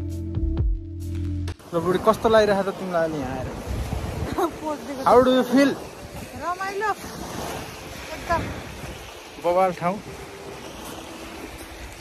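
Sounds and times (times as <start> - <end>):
wind rushing: 1.7 - 9.3.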